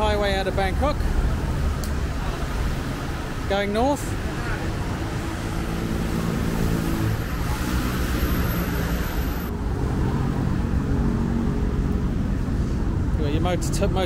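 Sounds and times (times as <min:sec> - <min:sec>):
highway traffic rushing past: 0:00.0 - 0:14.0.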